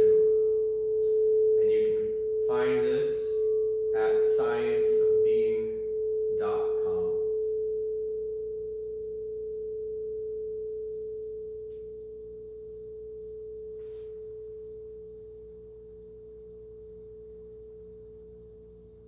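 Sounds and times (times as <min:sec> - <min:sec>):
singing bowl ringing: 0:00.0 - 0:19.0.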